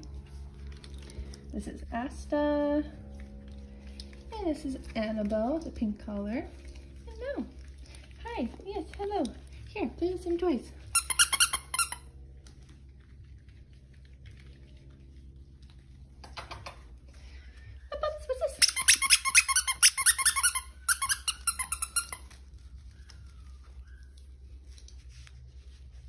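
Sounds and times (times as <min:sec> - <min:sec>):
dog toy squeaking: 0:10.9 - 0:12.1, 0:18.5 - 0:22.3.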